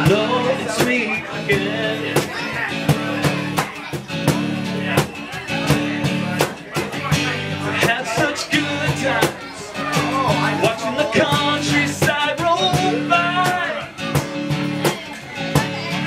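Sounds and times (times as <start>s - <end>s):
man singing: 0.0s - 3.6s, 4.8s - 14.3s
guitar playing chords: 0.0s - 16.0s.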